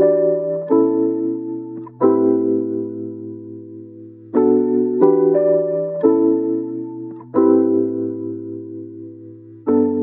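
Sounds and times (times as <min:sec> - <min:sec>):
soft background music chords: 0:00.0 - 0:10.0.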